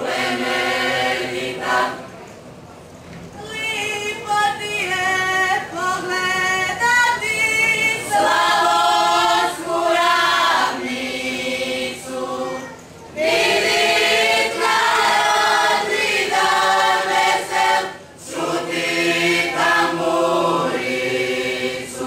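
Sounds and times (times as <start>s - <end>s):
group singing unaccompanied: 0.0s - 2.3s, 4.5s - 22.0s.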